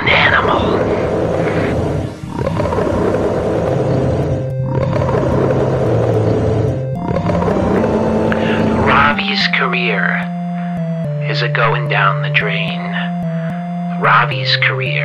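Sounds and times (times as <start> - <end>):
wild animal roaring: 0.0 - 9.2
music with held low notes: 0.0 - 15.0.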